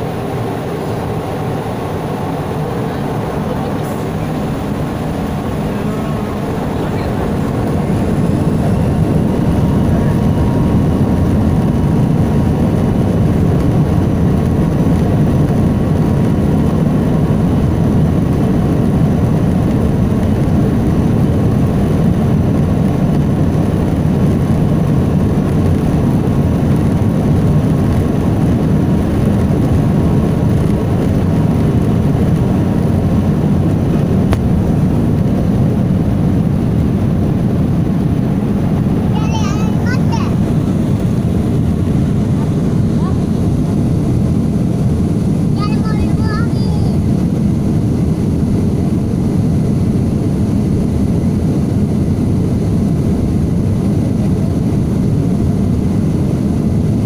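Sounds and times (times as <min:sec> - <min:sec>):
jet engines roaring: 0:00.0 - 0:57.0.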